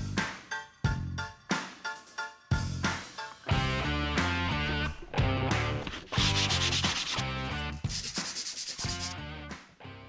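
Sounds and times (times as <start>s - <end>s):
guitar-led background music: 0.0s - 7.8s, 8.9s - 10.0s
scratchy hand sanding: 5.7s - 9.2s.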